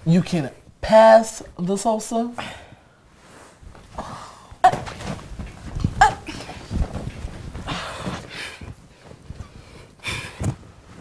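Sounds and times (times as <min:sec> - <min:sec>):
soft thumps against cushions: 0:03.7 - 0:11.0.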